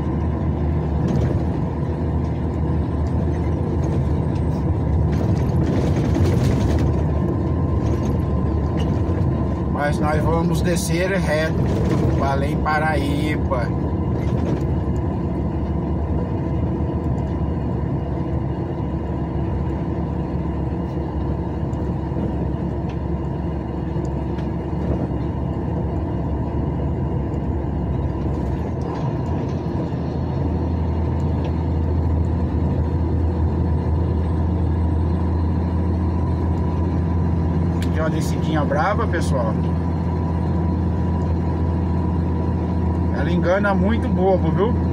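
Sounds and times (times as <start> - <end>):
engine and tyre noise in cabin: 0.0 - 44.9
low drone: 0.0 - 44.9.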